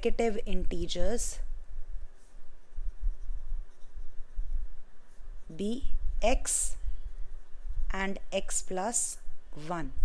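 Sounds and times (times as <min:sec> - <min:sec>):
pen writing on paper: 0:02.2 - 0:04.5.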